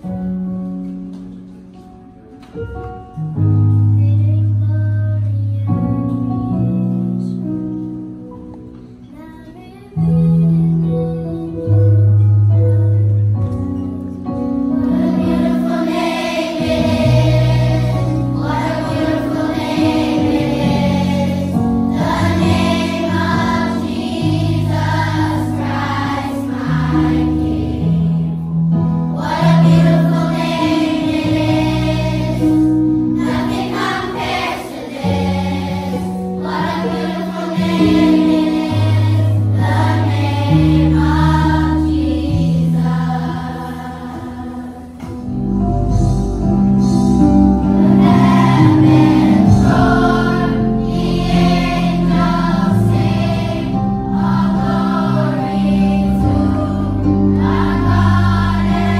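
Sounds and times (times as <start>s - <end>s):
electronic keyboard chords: 10.6s - 58.9s
children's choir singing: 14.7s - 28.5s, 29.1s - 45.4s, 47.7s - 58.9s.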